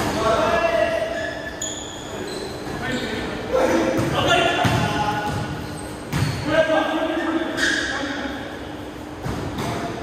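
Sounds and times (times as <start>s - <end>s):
basketball bouncing on court: 4.0s - 6.4s.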